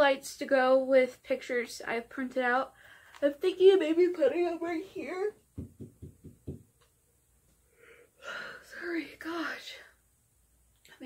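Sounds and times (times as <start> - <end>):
woman speaking: 0.0 - 5.4, 8.6 - 9.9.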